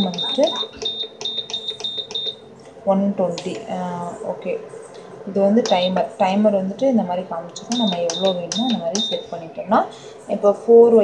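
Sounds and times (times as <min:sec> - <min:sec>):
rapid short high beeps: 0:00.0 - 0:02.4.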